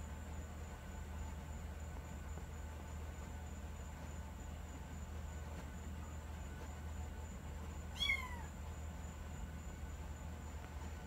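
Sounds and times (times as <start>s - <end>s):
kitten meowing: 7.9s - 8.5s.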